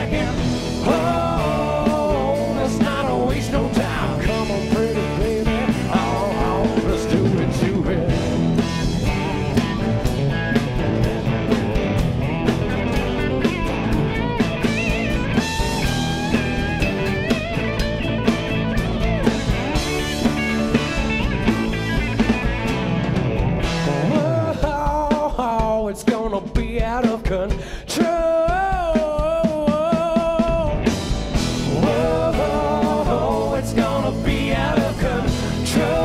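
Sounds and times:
lead electric guitar: 0:00.0 - 0:25.1, 0:30.1 - 0:36.0
bass guitar: 0:00.0 - 0:36.0
drum kit beat: 0:00.0 - 0:36.0
electric guitars: 0:00.0 - 0:36.0.

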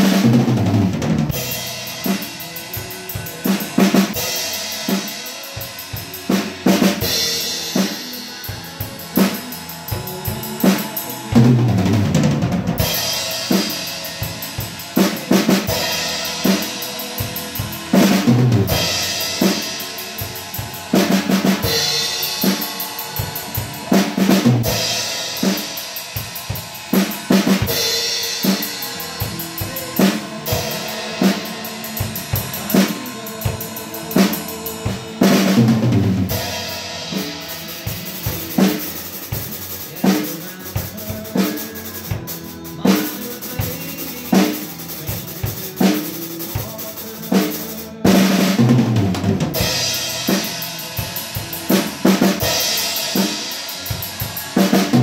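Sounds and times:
drum kit beat: 0:00.0 - 0:55.0
cymbal crashes: 0:01.3 - 0:39.9.

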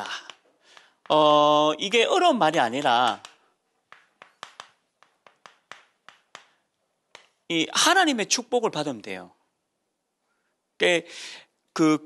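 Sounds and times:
chalk tapping and scraping on chalkboard: 0:03.9 - 0:06.5.

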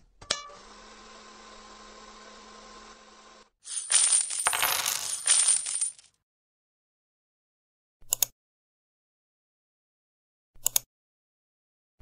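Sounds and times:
clattering jingling sound effect: 0:03.6 - 0:06.1.

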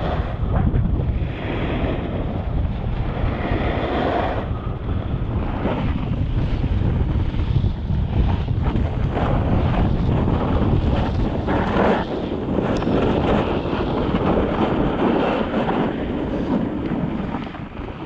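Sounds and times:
wind buffeting microphone: 0:00.0 - 0:18.0
snowboard edges scraping snow: 0:03.1 - 0:04.5, 0:05.4 - 0:18.0.

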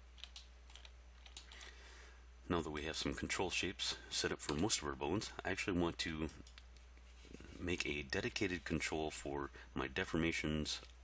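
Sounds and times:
steady low hum: 0:00.0 - 0:11.0
computer keyboard clicks: 0:00.2 - 0:01.6.

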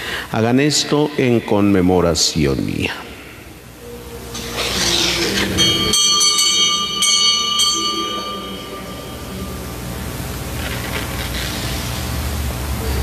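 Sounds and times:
small altar bell ringing: 0:04.3 - 0:10.6.

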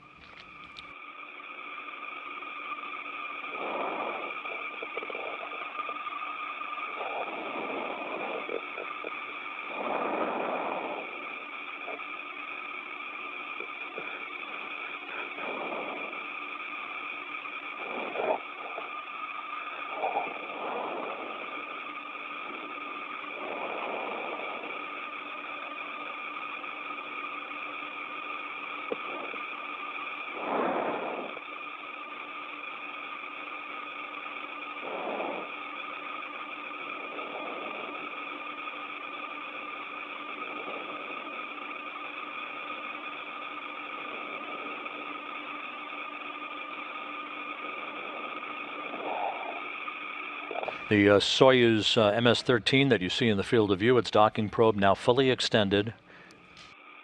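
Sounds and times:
constant hum tones: 0:00.0 - 0:57.0
steady hiss: 0:00.0 - 0:57.0.

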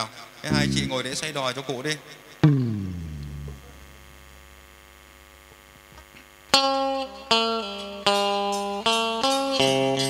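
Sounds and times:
amplified note sliding down: 0:00.5 - 0:01.3, 0:02.4 - 0:04.5
sound system low hum: 0:00.5 - 0:01.4, 0:02.4 - 0:04.8.

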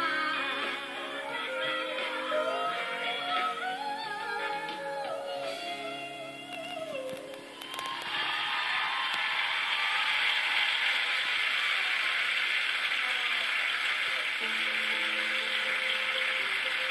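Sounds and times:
studio audience applauding: 0:07.6 - 0:16.9.

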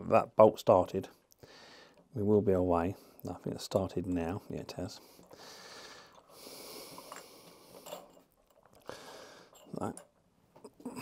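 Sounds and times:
faint breathing: 0:01.4 - 0:02.1, 0:04.9 - 0:09.7.

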